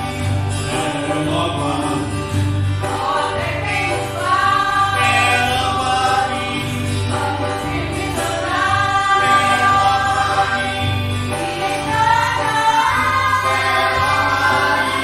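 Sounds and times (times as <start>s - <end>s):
congregation singing a hymn: 0.0s - 15.0s
low instrumental accompaniment: 0.0s - 15.0s.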